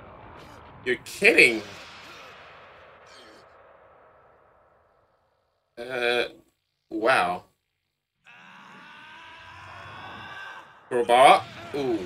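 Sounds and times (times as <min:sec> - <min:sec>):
long held cry: 0:08.3 - 0:12.0.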